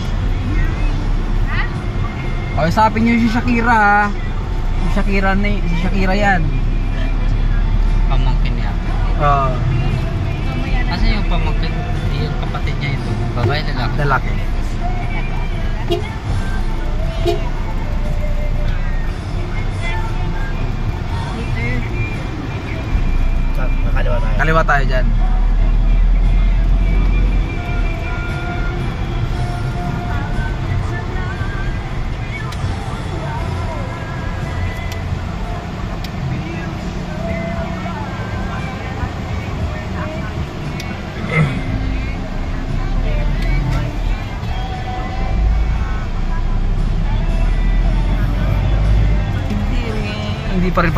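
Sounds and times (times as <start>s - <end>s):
engine and road rumble: 0.0s - 50.9s
music: 0.0s - 50.9s
voices: 0.0s - 50.9s.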